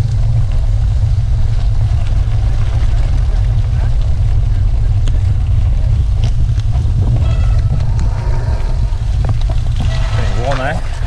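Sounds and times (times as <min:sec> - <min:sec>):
bicycle tyres on wet gravel: 0:00.0 - 0:11.0
wind buffeting microphone: 0:00.0 - 0:11.0.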